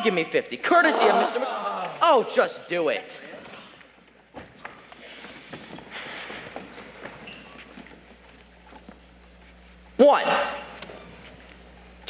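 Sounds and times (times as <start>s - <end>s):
footsteps on stage floor: 3.4s - 9.9s
shuffling and light knocks: 3.8s - 10.0s.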